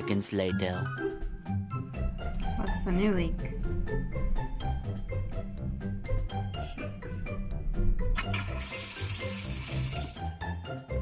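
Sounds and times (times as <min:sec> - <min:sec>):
upbeat background music: 0:00.0 - 0:11.0
water rushing from faucet: 0:08.2 - 0:10.3.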